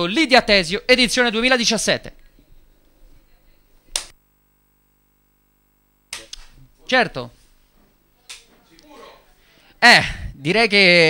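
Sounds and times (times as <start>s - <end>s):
sharp click: 3.9s - 4.2s, 6.1s - 6.6s.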